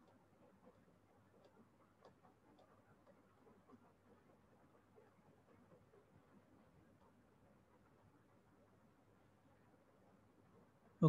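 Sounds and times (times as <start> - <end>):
soft regular ticks: 0.0 - 11.0.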